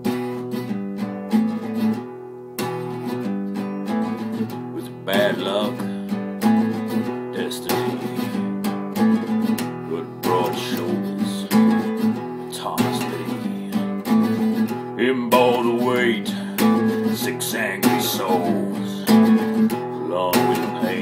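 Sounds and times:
strummed acoustic guitar: 0.0s - 21.0s.

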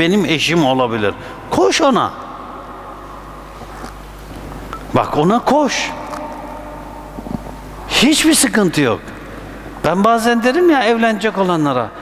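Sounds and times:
sound system hum: 0.0s - 12.0s.

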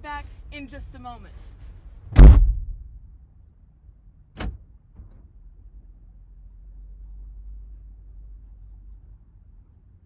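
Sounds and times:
car door slamming: 2.1s - 2.9s, 4.4s - 4.6s.

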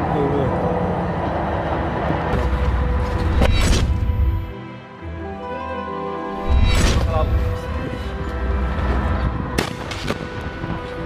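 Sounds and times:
music playing: 0.0s - 11.0s.

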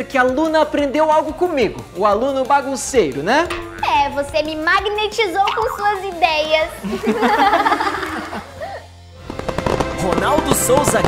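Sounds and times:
laughter: 6.8s - 8.9s
fireworks crackling and popping: 9.2s - 11.0s.

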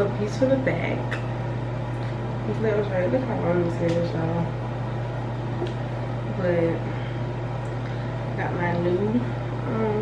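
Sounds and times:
woman speaking: 0.0s - 1.2s, 2.4s - 4.6s, 6.3s - 7.1s, 8.4s - 10.0s
steady low hum: 0.0s - 10.0s.

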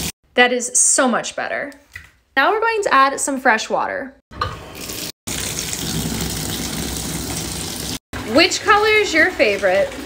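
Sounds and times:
bathtub faucet running: 4.4s - 10.0s.

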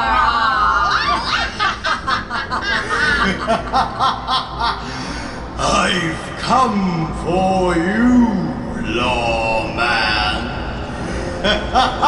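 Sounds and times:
witch cackling: 0.0s - 4.9s, 11.4s - 12.0s.

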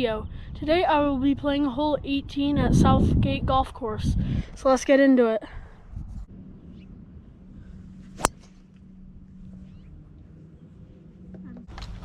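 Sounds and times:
golf club striking ball: 8.1s - 9.2s.

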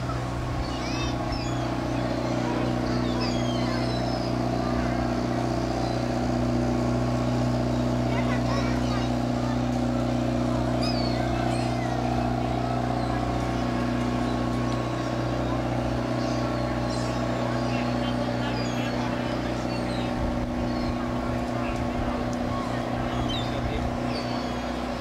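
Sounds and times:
boat engine drone: 0.0s - 25.0s.

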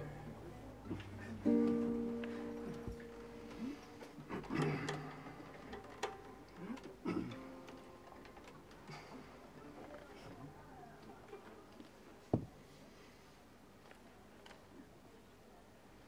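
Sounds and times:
classical guitar chord: 1.1s - 4.2s.

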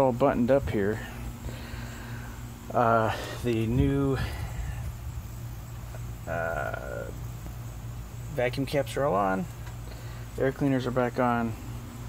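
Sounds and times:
engine idling low rumble: 0.0s - 12.0s.

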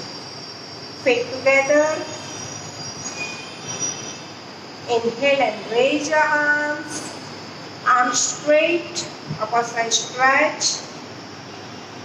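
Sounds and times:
faint high-pitched whistling tones: 0.0s - 5.2s.

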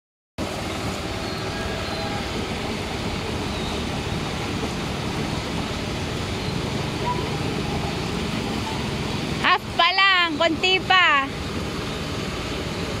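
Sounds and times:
water rushing from bubbler jets: 0.4s - 13.0s.

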